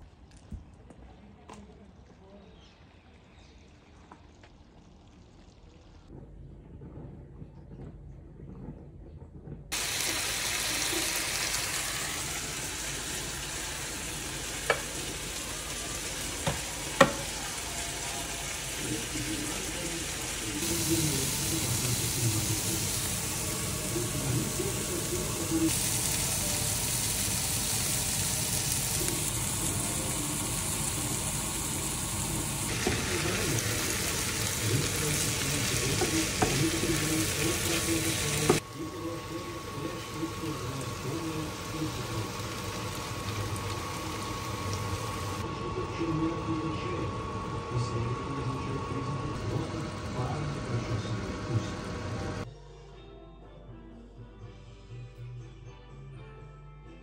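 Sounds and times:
vegetables sizzling in a pan: 9.7 - 45.4.

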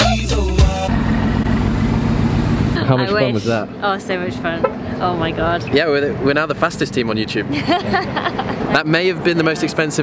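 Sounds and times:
car engine idling: 0.5 - 8.6.

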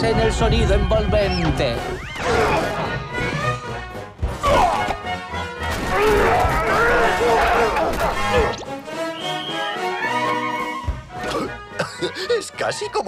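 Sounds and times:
orchestral cartoon music: 0.0 - 13.0
people shouting: 4.3 - 8.6.

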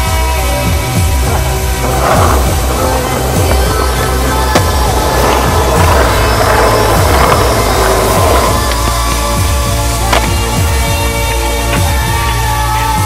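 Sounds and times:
skateboard wheels rolling on concrete: 0.0 - 13.0.

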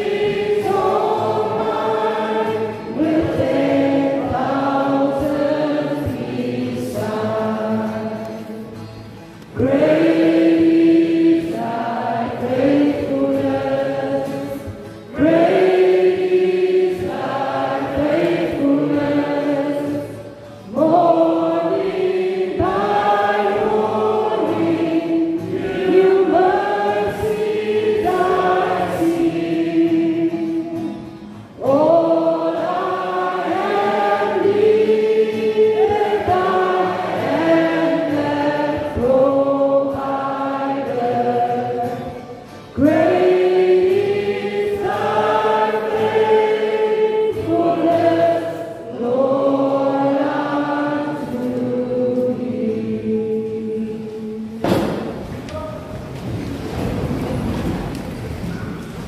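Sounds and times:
group singing in harmony: 0.0 - 55.5.

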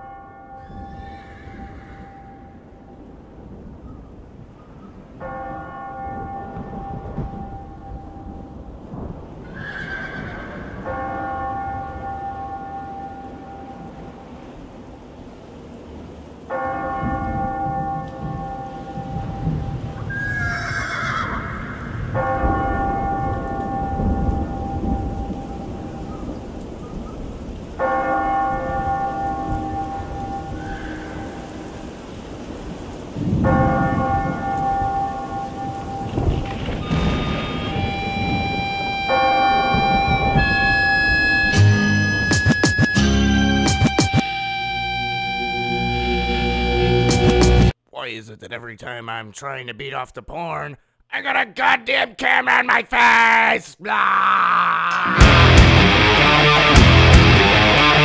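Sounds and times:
horse whinnying: 0.6 - 2.5, 9.4 - 10.8, 20.1 - 22.0
deep bell tolling: 16.5 - 20.0, 22.1 - 25.8, 33.5 - 42.3, 55.2 - 58.0.

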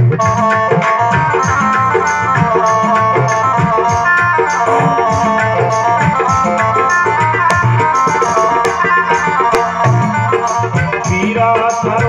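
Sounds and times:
hand drum beat: 0.0 - 12.0
harmonium melody: 0.0 - 12.0.

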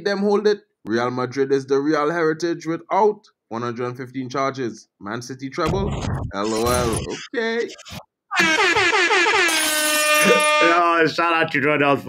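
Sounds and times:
pulsing air horn: 8.3 - 11.0.

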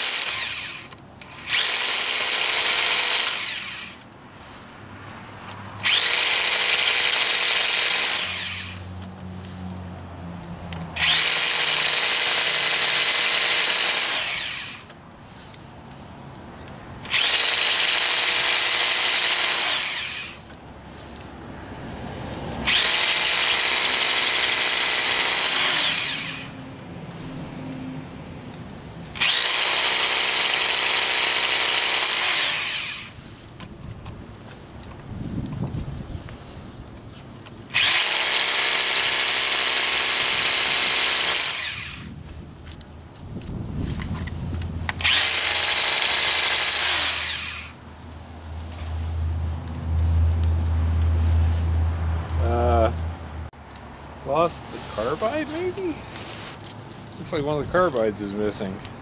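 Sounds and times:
electric drill boring into stone: 0.0 - 4.0, 5.8 - 8.8, 11.0 - 14.9, 17.1 - 20.4, 22.7 - 26.5, 29.2 - 33.2, 37.7 - 42.1, 45.0 - 47.8.

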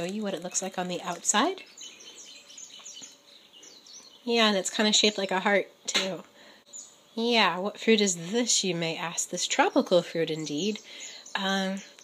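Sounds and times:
bird chirping: 0.0 - 6.0, 6.6 - 7.6, 9.5 - 12.0.

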